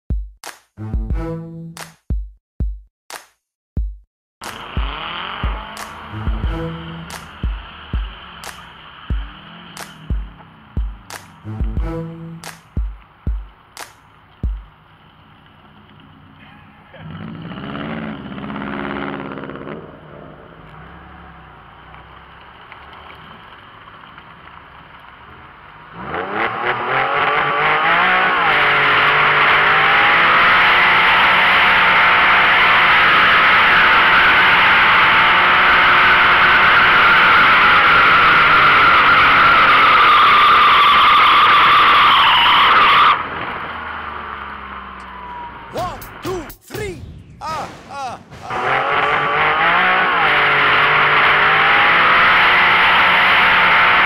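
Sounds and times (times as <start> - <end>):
tires squealing: 4.4 - 46.2, 48.2 - 54.0
car engine revving: 4.4 - 54.0.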